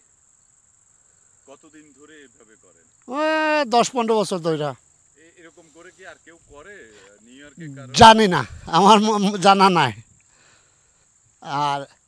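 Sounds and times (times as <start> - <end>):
crickets trilling: 0.0 - 12.0
man talking: 1.5 - 10.0, 11.4 - 11.9.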